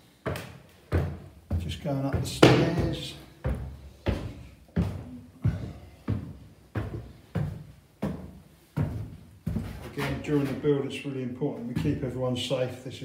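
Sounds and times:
footsteps climbing stairs: 0.0 - 10.8, 11.5 - 12.2.

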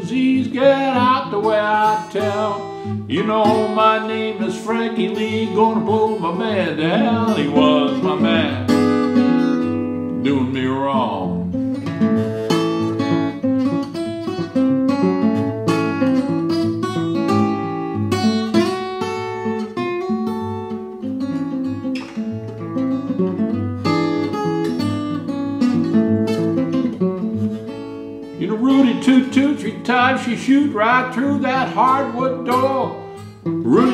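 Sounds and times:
acoustic guitar picked melody: 0.0 - 33.9.

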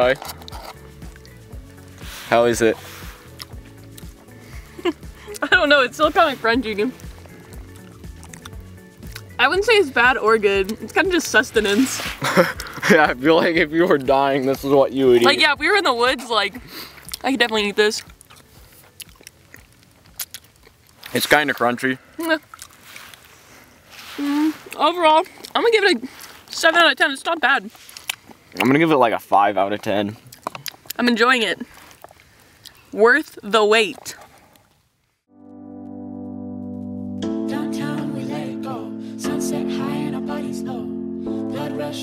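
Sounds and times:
chewing crunchy food: 0.0 - 2.1, 3.0 - 5.5, 6.9 - 9.4, 16.6 - 23.5, 24.6 - 26.6, 27.7 - 28.8, 29.7 - 33.0
steady background tones: 35.3 - 42.0.

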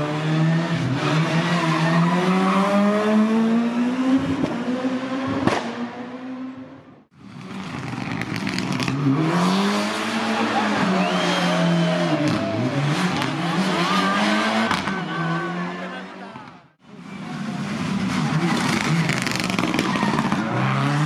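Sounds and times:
car driving off: 0.0 - 21.0
rally car engine revving: 0.0 - 21.0
faint tyre squeal: 10.7 - 12.7.

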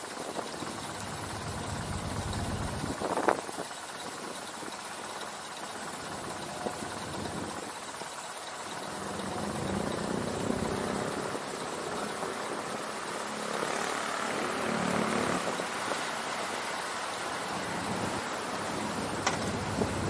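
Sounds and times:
city traffic noise: 0.0 - 20.0
vehicle engines idling: 0.0 - 20.0
low engine hum: 0.6 - 20.0.

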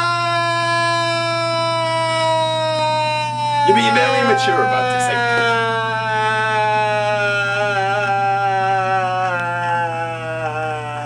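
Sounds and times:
man wailing and crying: 3.6 - 11.0.

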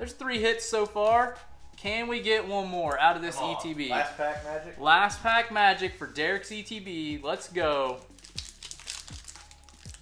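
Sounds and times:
quiet music with low beat: 0.0 - 10.0
foil wrapper crinkling and tearing: 7.9 - 10.0.

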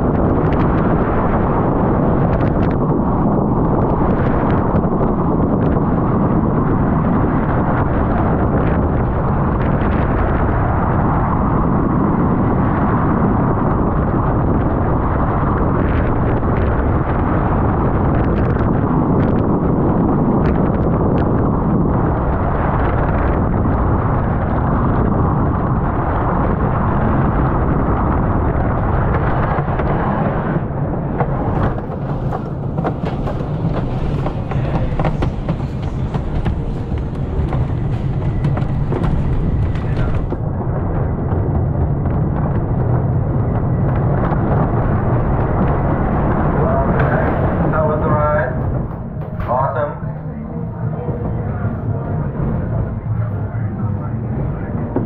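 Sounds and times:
roller coaster wheels rumbling on track: 0.0 - 55.0
wind rushing on microphone: 0.0 - 55.0.

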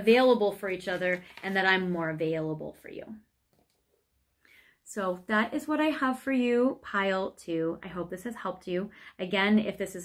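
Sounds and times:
woman speaking: 0.0 - 3.2, 4.9 - 10.0.

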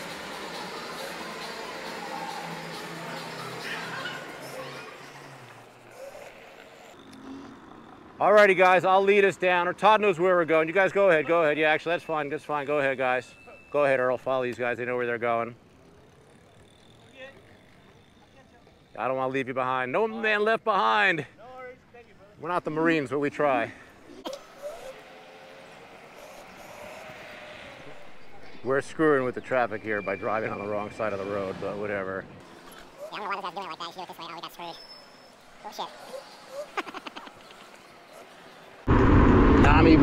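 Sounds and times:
scooter road noise: 0.0 - 20.3, 23.4 - 40.0
wind: 0.0 - 40.0.

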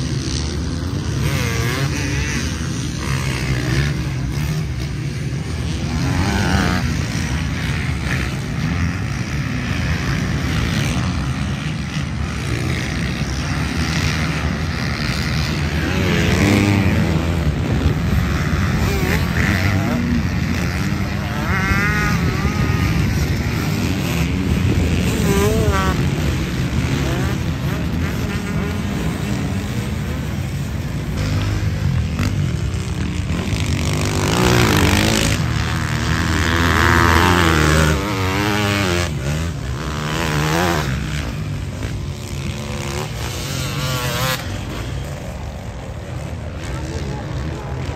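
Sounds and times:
motocross bike engines revving: 0.0 - 47.9.

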